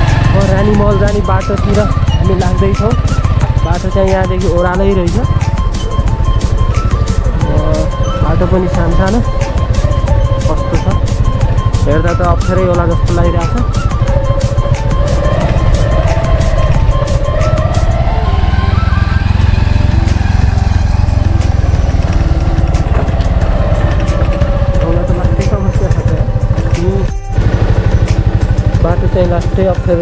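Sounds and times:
background music: 0.0 - 30.0
motorcycle engine running: 0.0 - 30.0.

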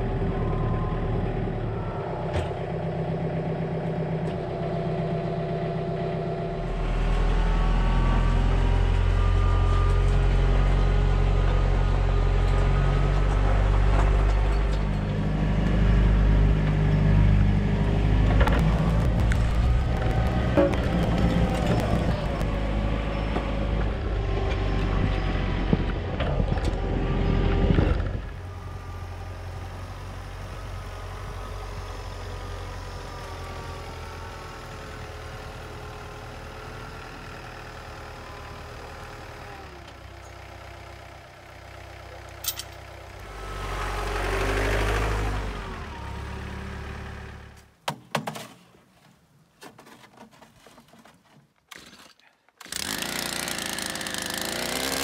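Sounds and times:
tractor diesel engine running: 0.0 - 47.7, 52.7 - 55.0
knocks and rattles: 18.2 - 23.5.

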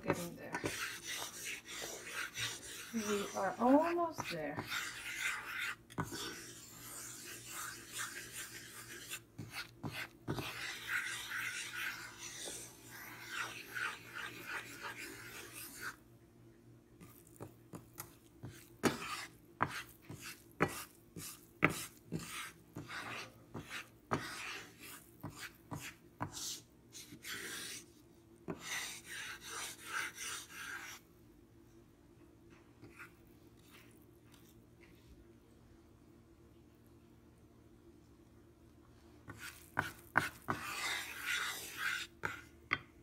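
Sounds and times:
wooden spoon scraping a pan: 0.0 - 16.0, 17.0 - 27.8, 39.3 - 42.5.

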